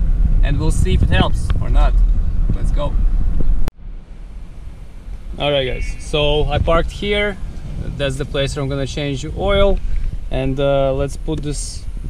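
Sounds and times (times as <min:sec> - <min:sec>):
low hum: 0:00.0 - 0:12.0
road and engine rumble in cabin: 0:00.0 - 0:12.0.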